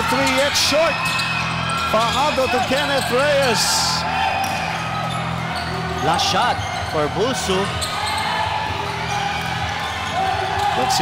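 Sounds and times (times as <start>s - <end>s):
crowd noise hum: 0.0s - 11.0s.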